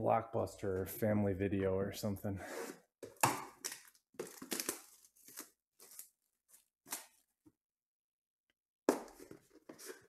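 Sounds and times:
plastic shrink wrap tearing: 3.7s - 6.2s.

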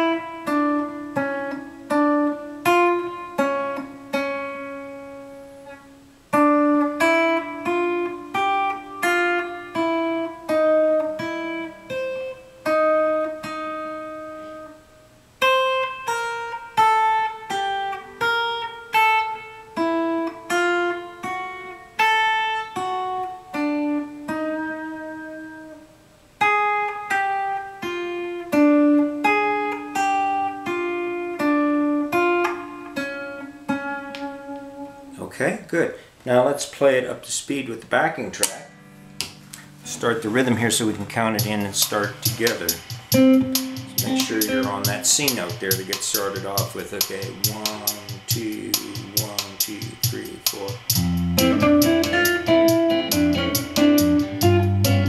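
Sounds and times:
guitar picking slow melody: 0.0s - 35.2s, 38.4s - 55.0s.

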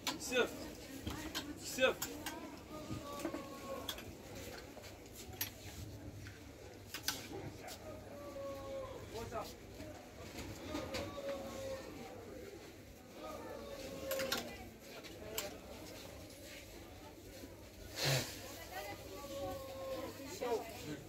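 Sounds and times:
indistinct voices: 0.0s - 4.7s, 10.4s - 15.9s.

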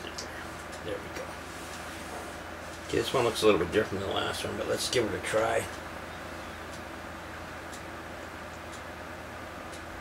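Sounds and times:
low room hum: 0.0s - 10.0s
small faint clicks: 6.7s - 6.9s, 7.7s - 8.9s, 9.7s - 9.9s.

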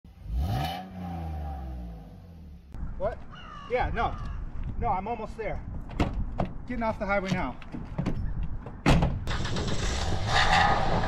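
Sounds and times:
car engine revving: 0.1s - 2.7s, 9.3s - 11.0s.

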